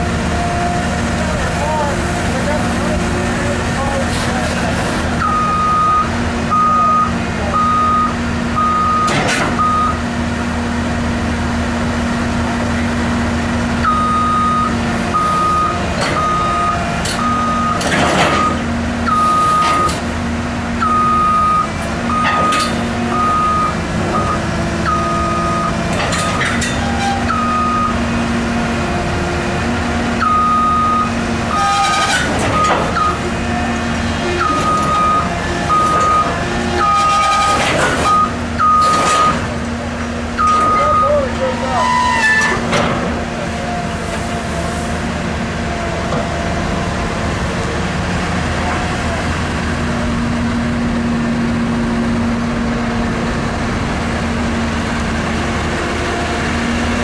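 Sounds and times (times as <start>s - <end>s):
diesel engine running: 0.0s - 57.0s
excavator warning alarm beeping: 5.2s - 10.0s, 13.8s - 20.0s, 20.8s - 28.1s, 30.2s - 33.7s, 34.3s - 39.5s, 40.3s - 42.1s.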